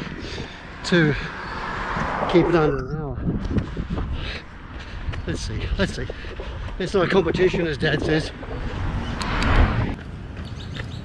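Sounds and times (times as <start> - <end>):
outdoor background: 0.0 - 11.0.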